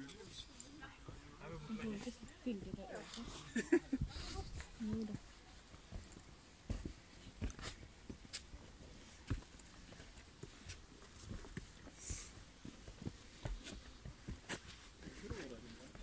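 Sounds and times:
footsteps on dirt trail: 0.9 - 16.0.

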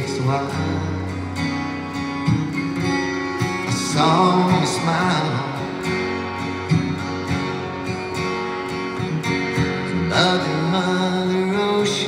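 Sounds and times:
man singing: 0.0 - 1.6, 3.6 - 6.0, 9.8 - 12.0
acoustic guitar strummed chords: 0.0 - 12.0.

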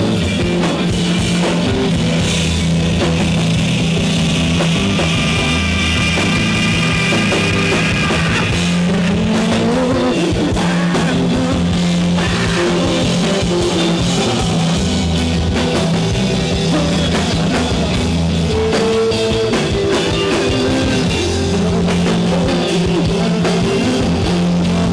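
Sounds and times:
bass guitar: 0.0 - 24.9
drum kit: 0.0 - 24.9
electric guitar: 0.0 - 24.9.

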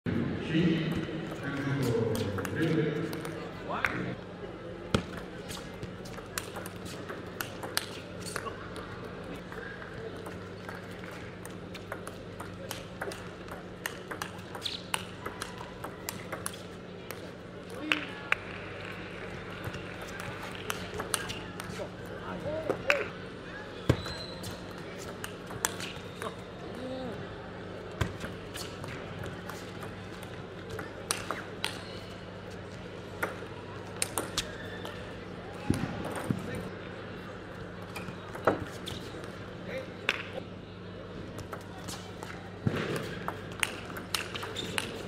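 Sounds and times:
low hum in hall: 0.1 - 45.0
table tennis ball clicking: 10.2 - 16.7.

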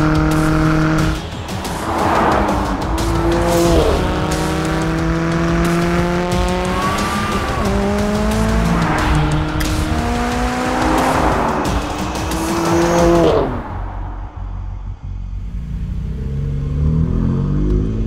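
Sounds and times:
car engine accelerating hard: 0.0 - 18.0.

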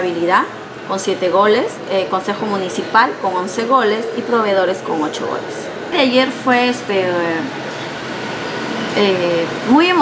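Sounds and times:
background noise rush: 0.0 - 10.0.

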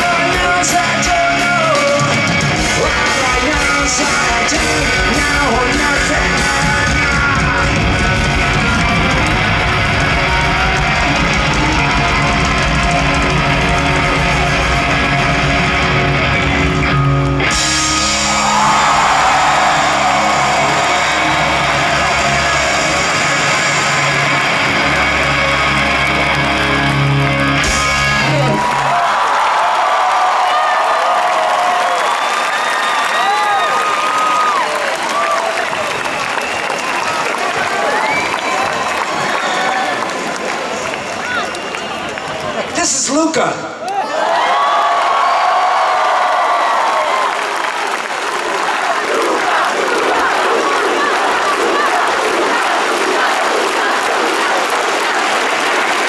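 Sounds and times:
drums and cymbals: 0.0 - 16.9, 17.5 - 26.4
bass guitar: 0.0 - 28.9
distorted electric guitars: 0.0 - 28.9
crowd cheering and screaming: 0.0 - 56.0.

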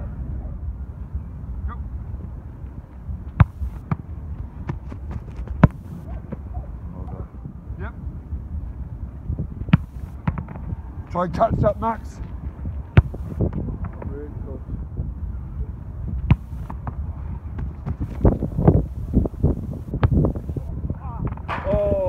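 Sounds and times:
wind buffeting microphone: 0.0 - 22.0
football being kicked: 3.3 - 6.5, 9.7 - 10.6, 12.9 - 14.0, 16.2 - 18.8, 19.9 - 20.5.

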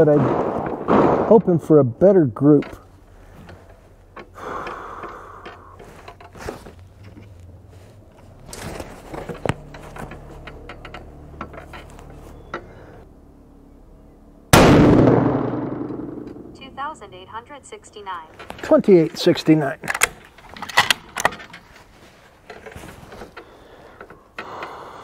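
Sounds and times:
rifle shot: 0.0 - 1.8, 14.6 - 16.6.

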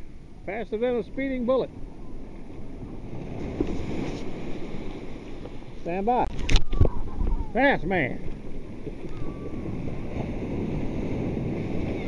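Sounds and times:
waves breaking on sand: 0.0 - 12.0.

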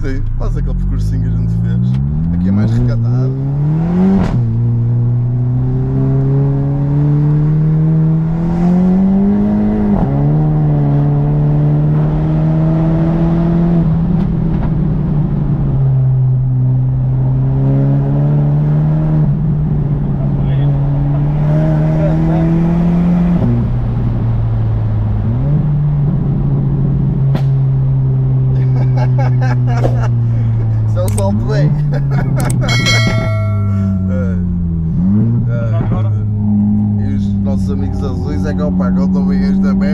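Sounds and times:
car engine revving through gears: 0.7 - 28.5, 29.1 - 39.9.

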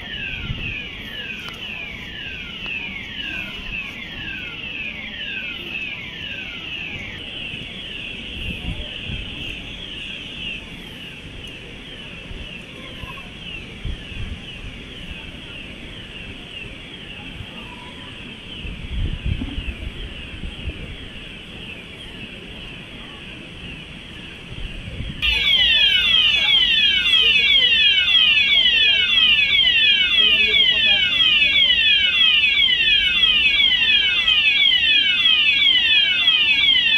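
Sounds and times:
fire alarm falling tone: 0.0 - 10.1, 25.2 - 36.9.

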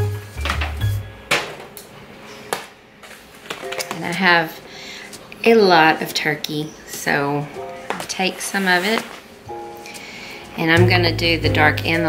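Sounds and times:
background music with bass: 0.0 - 1.2, 10.8 - 12.0.

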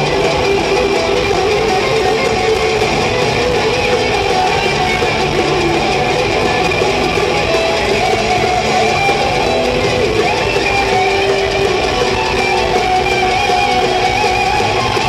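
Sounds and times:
drums: 0.0 - 15.0
electric guitars sustained notes: 0.0 - 15.0.

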